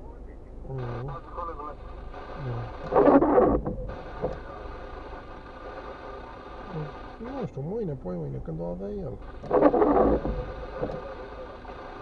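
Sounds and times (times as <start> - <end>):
muffled phone call voice on speakers: 0.0 - 3.2.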